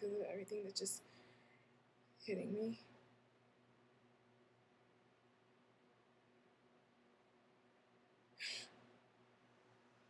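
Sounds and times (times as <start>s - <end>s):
faint steady hum: 0.0s - 10.0s
short sharp breath: 8.4s - 8.8s.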